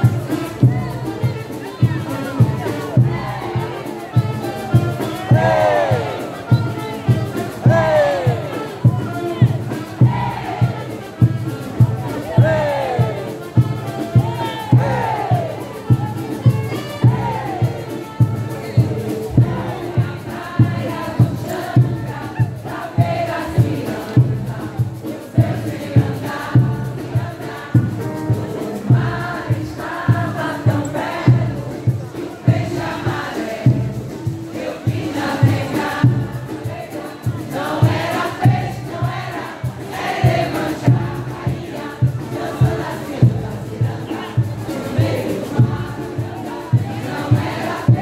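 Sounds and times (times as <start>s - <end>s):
bass drum beat: 0.0s - 48.0s
chorus of voices singing: 0.0s - 48.0s
crowd noise: 0.0s - 48.0s.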